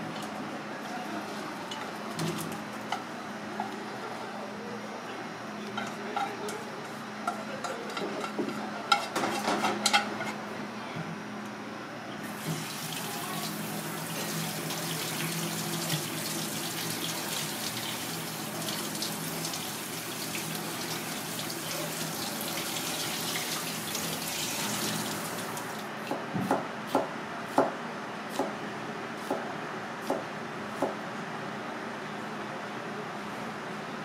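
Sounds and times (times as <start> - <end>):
tap water running onto rice: 12.3 - 25.8
knife chopping on plastic board: 26.1 - 28.6.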